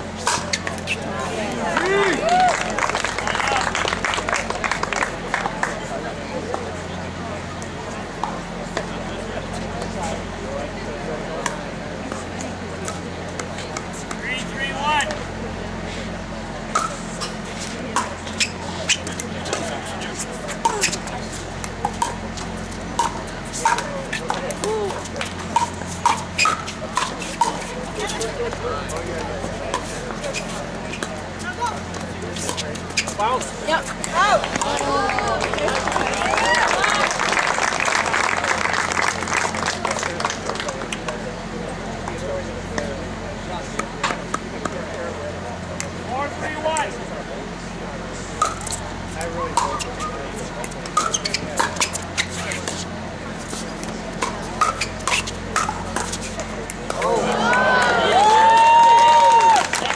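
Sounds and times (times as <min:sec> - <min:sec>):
voices: 0:00.0 - 0:59.9.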